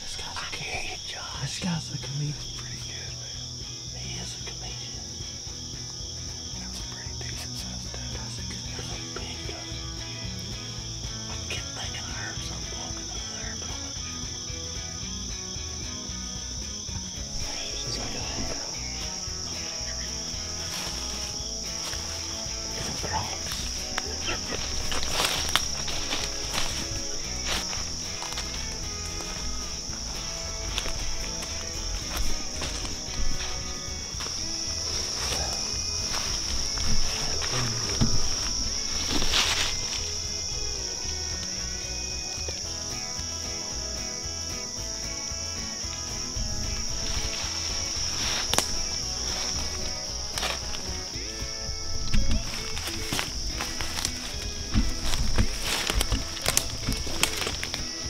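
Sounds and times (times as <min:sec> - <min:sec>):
background music: 0:00.0 - 0:58.0
high-pitched insect chorus: 0:00.0 - 0:58.0
footsteps crunching through leaves: 0:17.4 - 0:42.8, 0:45.3 - 0:58.0.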